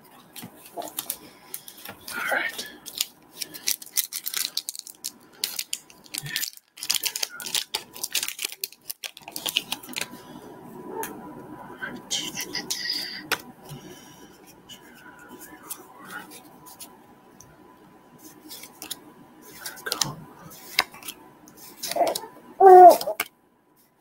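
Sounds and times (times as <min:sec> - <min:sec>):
trading cards crinkling and ticking: 0:00.2 - 0:10.2, 0:18.5 - 0:22.2.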